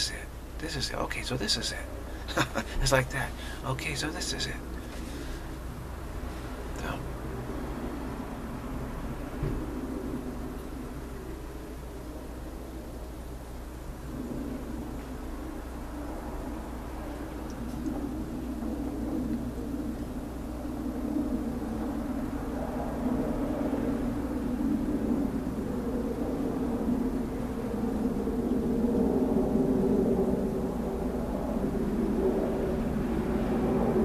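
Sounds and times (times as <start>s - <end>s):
steady low rumble: 0.0s - 34.0s.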